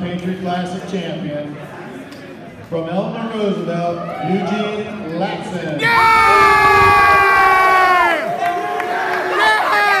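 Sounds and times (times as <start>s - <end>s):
high-pitched yell: 5.8s - 8.3s
crowd cheering: 5.8s - 10.0s
shouts and whoops: 5.8s - 10.0s.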